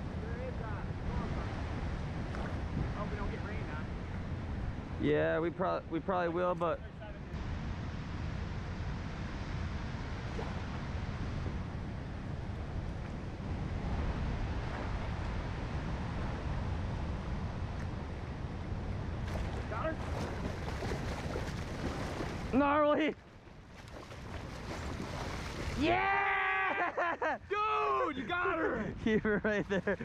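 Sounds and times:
wind buffeting microphone: 0.0s - 22.8s, 23.4s - 26.2s
rushing river current: 7.3s - 26.2s.

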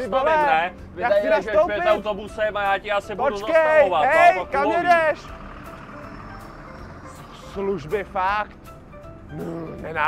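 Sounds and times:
bus engine: 0.0s - 10.0s
road noise: 0.0s - 10.0s.

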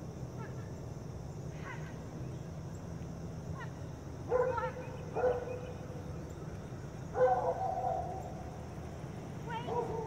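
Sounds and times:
dog barking: 4.3s - 5.6s, 7.2s - 8.2s, 9.6s - 10.0s.

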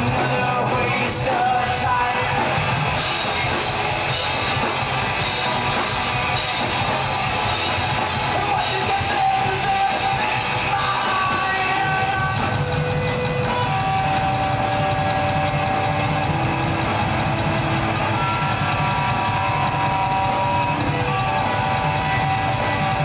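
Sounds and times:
electric guitars: 0.0s - 23.0s
fast drum beat: 0.0s - 23.0s.

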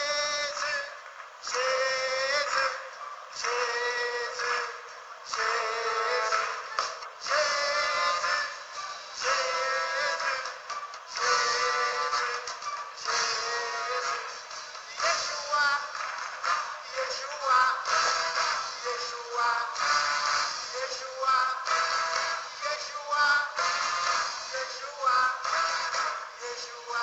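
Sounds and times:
worship song singing over music: 0.0s - 27.0s.

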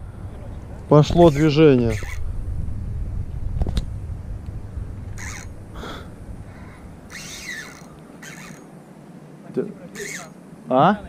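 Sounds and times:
wind rumbling on microphone: 0.0s - 8.6s
high bird calls: 0.4s - 2.3s, 5.1s - 10.6s.

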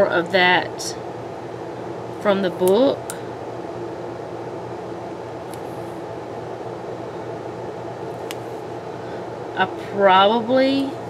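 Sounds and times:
background hum: 0.0s - 11.0s.

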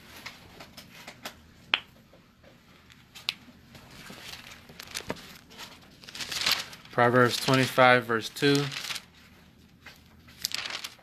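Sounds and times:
pages flicking: 3.9s - 7.8s, 8.4s - 9.1s, 10.3s - 11.0s.

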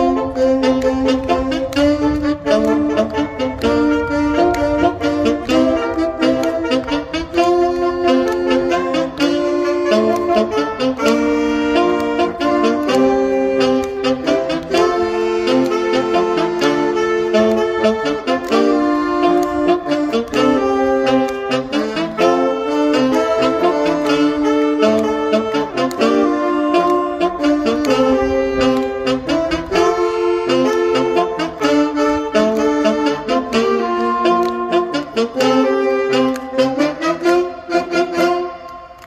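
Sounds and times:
saxophone ensemble playing: 0.0s - 39.0s.

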